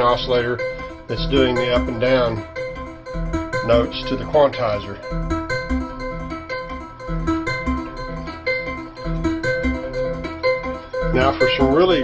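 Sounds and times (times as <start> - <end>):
synthesizer repeating short notes: 0.0 - 12.0.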